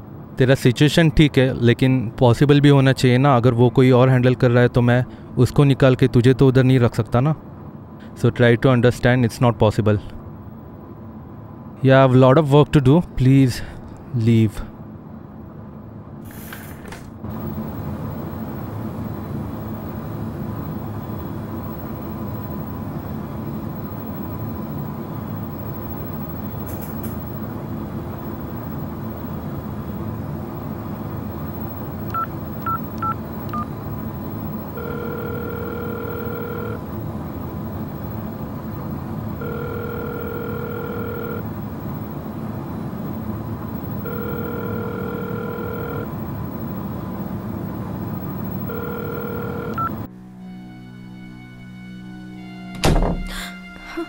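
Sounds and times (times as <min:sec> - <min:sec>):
steady background noise: 0:00.0 - 0:50.4
telephone ringback tone: 0:31.3 - 0:37.0, 0:37.8 - 0:42.2, 0:43.6 - 0:50.1
phone keypad beeps: 0:31.5 - 0:36.8, 0:39.4 - 0:41.4, 0:43.7 - 0:46.9, 0:48.0 - 0:50.1.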